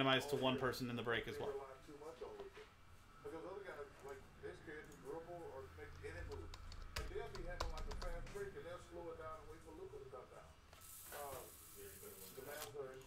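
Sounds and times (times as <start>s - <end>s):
computer keyboard clicks: 6.3s - 8.3s.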